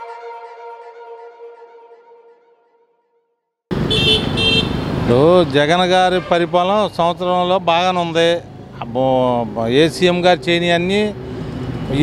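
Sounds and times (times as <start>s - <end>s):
vehicle horn toots: 0.0s - 4.8s
street traffic noise: 3.7s - 12.0s.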